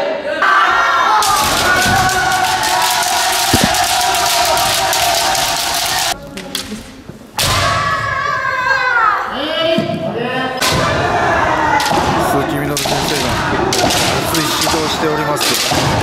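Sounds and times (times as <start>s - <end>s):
people shouting: 0.7s - 6.2s
stamping footwork on wood: 3.5s - 3.8s
bamboo swords striking: 3.5s - 4.0s.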